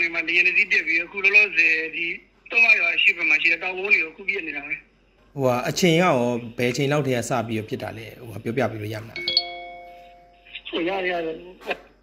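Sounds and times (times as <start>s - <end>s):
person speaking: 0.0s - 11.9s
bright bell-like chime: 9.1s - 10.5s.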